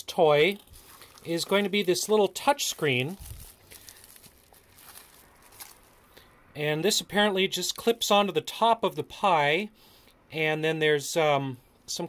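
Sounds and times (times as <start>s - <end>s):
bubble-wrap bag crinkling: 0.3s - 6.2s.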